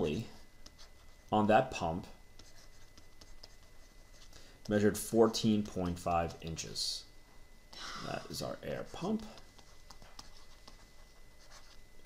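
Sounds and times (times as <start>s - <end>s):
stylus tapping and scratching on tablet: 0.5s - 1.5s, 2.3s - 6.6s, 8.4s - 12.0s.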